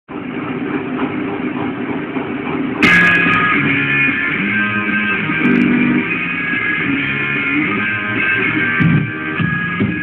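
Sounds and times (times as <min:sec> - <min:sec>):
distorted electric guitar buzz: 0:02.8 - 0:10.0.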